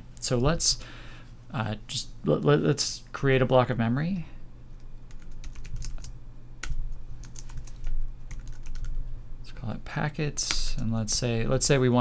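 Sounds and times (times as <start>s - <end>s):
computer keyboard typing: 5.1s - 9.0s.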